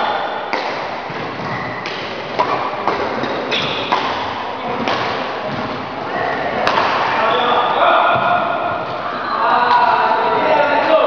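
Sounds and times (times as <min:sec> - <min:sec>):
voices talking in hall: 0:02.9 - 0:11.0.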